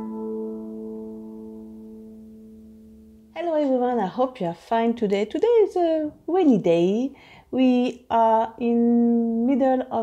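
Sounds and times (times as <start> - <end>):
harp chord ringing: 0.0 - 3.4.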